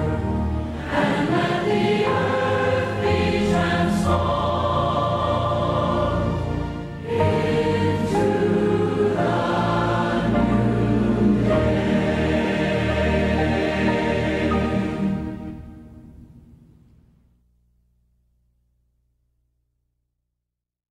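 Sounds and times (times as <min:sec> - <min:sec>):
congregation singing a hymn: 0:00.0 - 0:15.7.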